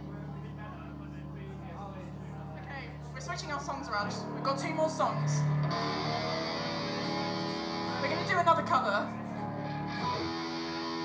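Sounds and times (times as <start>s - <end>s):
crowd chatter: 0.0s - 11.0s
distorted electric guitar chord: 4.0s - 11.0s.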